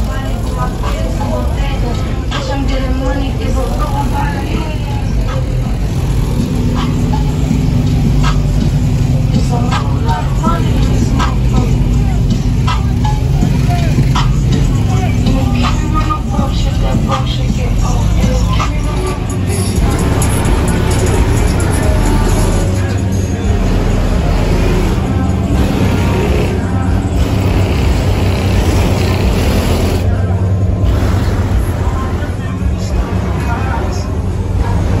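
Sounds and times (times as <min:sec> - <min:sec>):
cars driving past: 0:00.0 - 0:35.0
rap music with heavy bass: 0:00.0 - 0:35.0.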